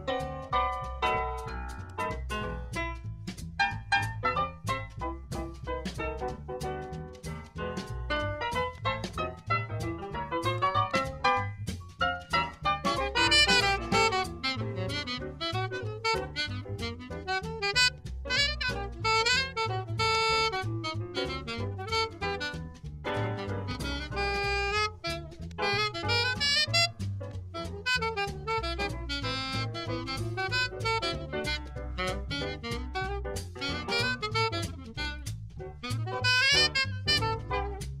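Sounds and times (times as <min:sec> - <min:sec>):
piano: 0:00.0 - 0:38.0
plucked double bass: 0:00.0 - 0:38.0
saxophone lead line: 0:12.8 - 0:37.9.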